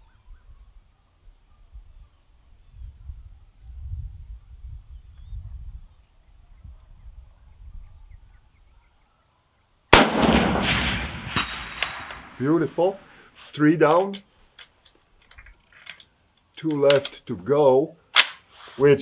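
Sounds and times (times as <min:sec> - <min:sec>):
rifle shot with echo: 0:09.9 - 0:12.7.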